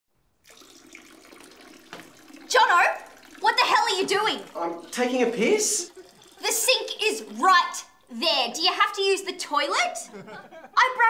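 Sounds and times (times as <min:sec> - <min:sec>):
urine running into toilet water: 0:00.3 - 0:10.0.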